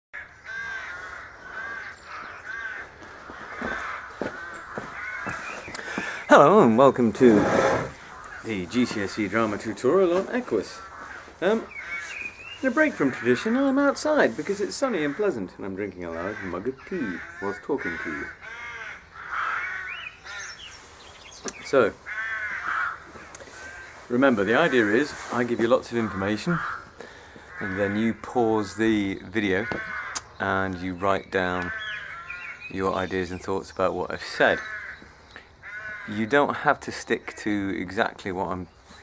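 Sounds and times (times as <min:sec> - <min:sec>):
crow cawing: 0:00.2 - 0:06.3, 0:07.6 - 0:08.8, 0:10.5 - 0:14.0, 0:14.8 - 0:20.8, 0:22.0 - 0:25.3, 0:25.9 - 0:28.2, 0:29.5 - 0:30.4, 0:31.6 - 0:32.7, 0:34.4 - 0:36.3.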